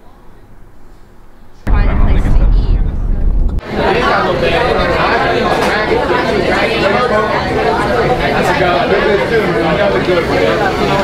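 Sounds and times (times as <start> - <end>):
crowded room chatter: 3.6 - 11.0.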